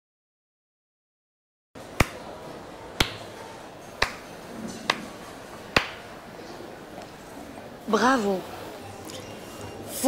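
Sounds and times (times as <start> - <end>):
person clapping slowly: 4.0 - 4.2.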